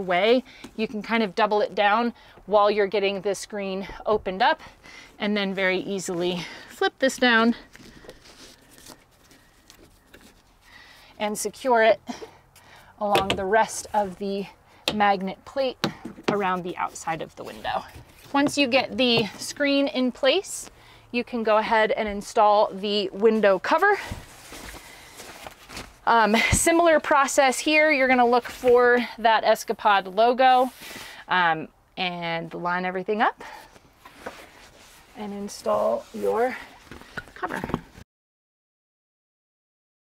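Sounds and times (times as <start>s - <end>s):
fabric rustling: 23.6s - 27.3s, 34.0s - 37.6s.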